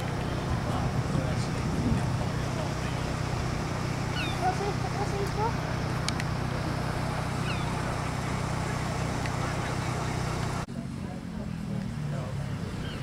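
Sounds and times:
car engine idling: 0.0s - 13.0s
faint voices: 0.0s - 13.0s
low uneven rumble: 0.0s - 13.0s.

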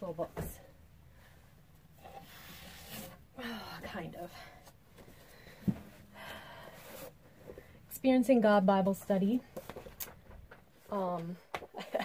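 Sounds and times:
books sliding on wooden shelf: 2.0s - 3.2s.

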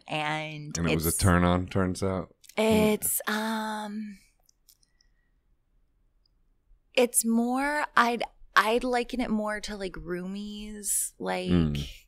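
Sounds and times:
woman speaking: 0.0s - 1.2s, 2.5s - 4.2s, 7.0s - 12.0s.

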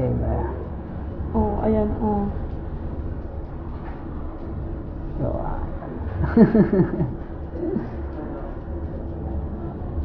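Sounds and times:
person laughing: 6.2s - 7.2s.

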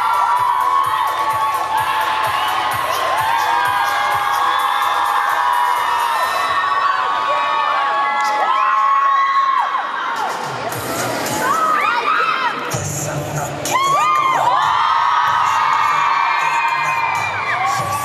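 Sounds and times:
audience cheering and screaming: 0.0s - 12.8s, 13.6s - 18.0s.

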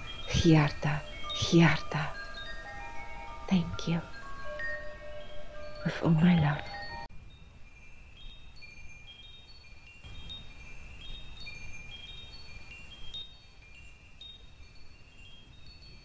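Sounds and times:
wind chimes ringing: 0.0s - 16.0s.

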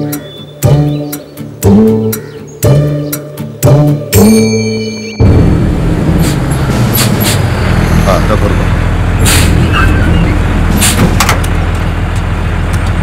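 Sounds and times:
truck engine rumbling: 5.2s - 13.0s
sharp clicks and knocks: 10.9s - 13.0s.

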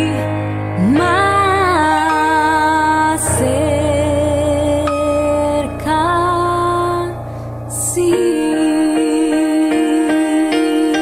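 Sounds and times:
slow hymn music: 0.0s - 11.0s.

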